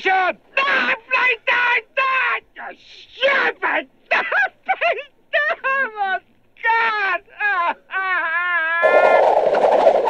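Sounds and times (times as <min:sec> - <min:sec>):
man wailing and sobbing: 0:07.3 - 0:08.9
loud rushing noise: 0:08.8 - 0:10.0.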